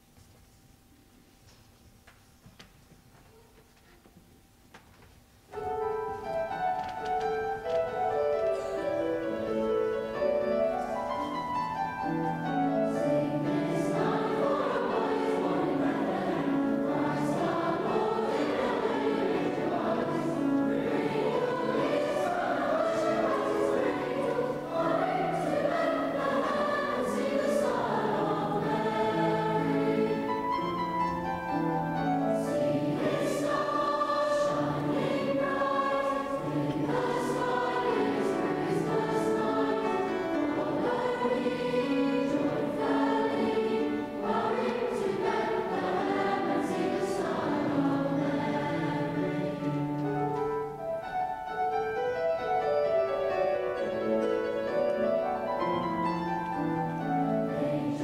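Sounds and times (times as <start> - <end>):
choir singing a carol: 5.6 - 58.0.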